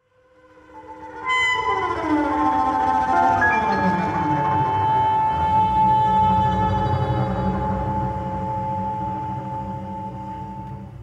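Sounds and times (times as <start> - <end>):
ensemble music with piano and bass: 0.3 - 11.0.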